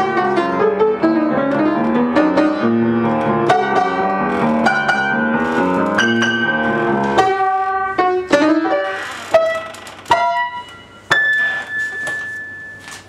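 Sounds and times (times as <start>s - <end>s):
slow solo piano notes: 0.0s - 13.0s.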